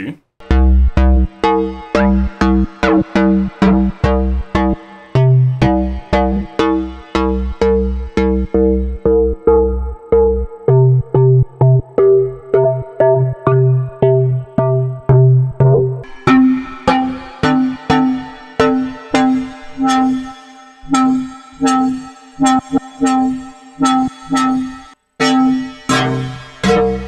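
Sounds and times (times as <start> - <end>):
synthesizer saw-wave notes: 0.4 - 27.0.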